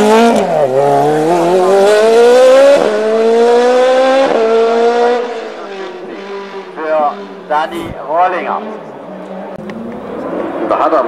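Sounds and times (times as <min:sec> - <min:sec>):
race car engine accelerating: 0:00.0 - 0:11.0.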